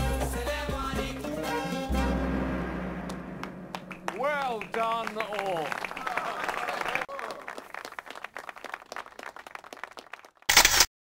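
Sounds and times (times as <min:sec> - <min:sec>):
audience applauding: 0:03.1 - 0:10.5.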